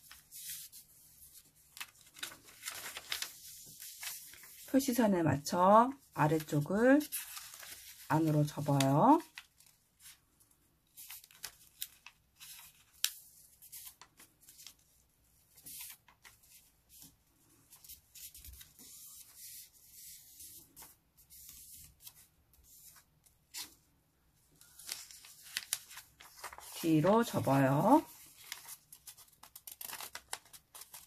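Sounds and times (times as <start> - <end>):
paper rustling and crackling: 0.0 - 4.7, 6.3 - 10.2, 10.9 - 23.8, 24.5 - 31.0.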